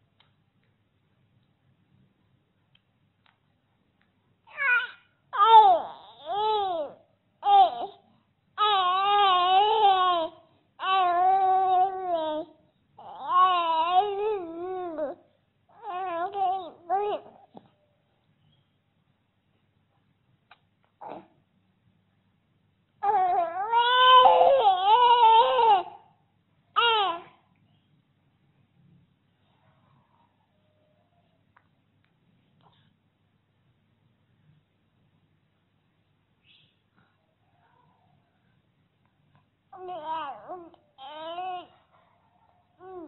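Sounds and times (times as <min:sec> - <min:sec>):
baby crying: 0:04.5 - 0:08.0, 0:08.6 - 0:17.5, 0:23.0 - 0:26.1, 0:26.8 - 0:27.4, 0:39.8 - 0:41.8, 0:42.8 - 0:43.0
infant cooing: 0:04.5 - 0:08.0, 0:08.6 - 0:17.6, 0:21.0 - 0:21.4, 0:23.0 - 0:26.0, 0:39.8 - 0:41.7, 0:42.8 - 0:43.0.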